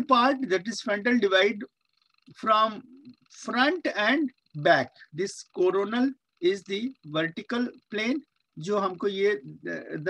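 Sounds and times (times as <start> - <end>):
person lecturing: 0.0 - 1.7, 2.3 - 10.0.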